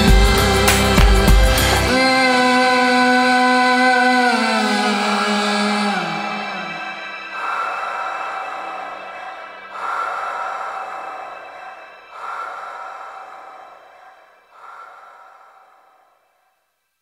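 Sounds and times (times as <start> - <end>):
breathy swells of noise: 4.9 - 16.8.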